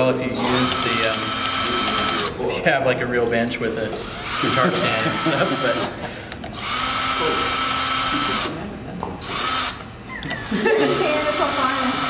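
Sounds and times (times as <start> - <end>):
people talking: 0.0 - 6.0, 10.5 - 12.0
cordless drill whining: 0.4 - 2.4, 4.0 - 8.6, 9.2 - 12.0.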